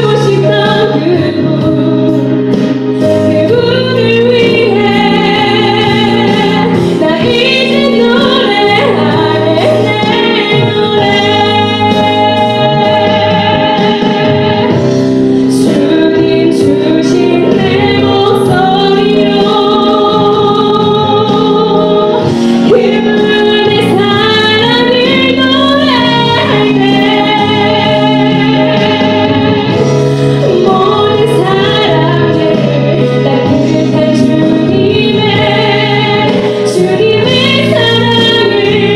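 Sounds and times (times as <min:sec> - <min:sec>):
woman singing into a microphone: 0:00.0 - 0:38.9
sustained accompaniment: 0:00.3 - 0:38.9.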